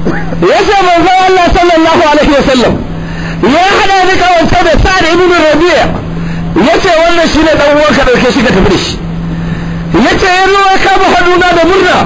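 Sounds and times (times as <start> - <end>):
low steady hum: 0.0 - 12.0
man preaching loudly: 0.4 - 2.8, 3.4 - 6.0, 6.6 - 9.0, 9.9 - 12.0.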